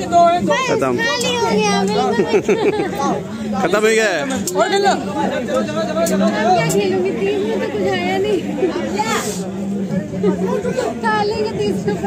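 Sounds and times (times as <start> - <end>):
children's voices: 0.0 - 3.6, 10.2 - 12.0
crowd chatter: 0.0 - 12.0.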